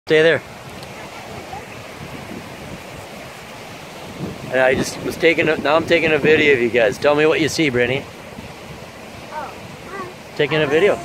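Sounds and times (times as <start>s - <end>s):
river rushing: 0.1s - 11.0s
wind buffeting microphone: 0.3s - 11.0s.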